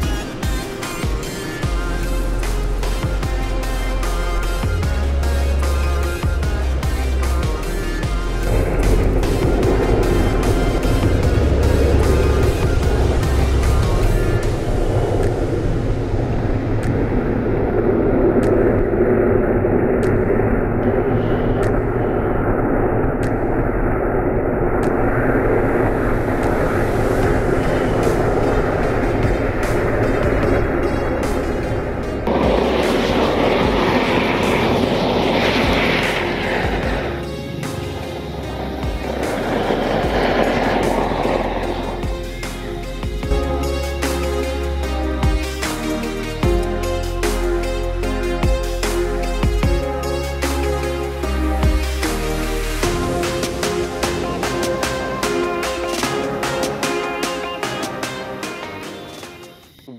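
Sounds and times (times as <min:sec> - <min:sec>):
background music: 0:00.0 - 0:23.5, 0:24.8 - 0:59.9
fountain fireworks rushing: 0:00.0 - 0:59.6.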